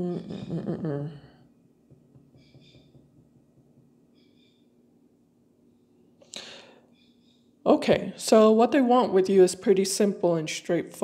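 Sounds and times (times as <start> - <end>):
sharp intake of breath: 6.3 - 6.9.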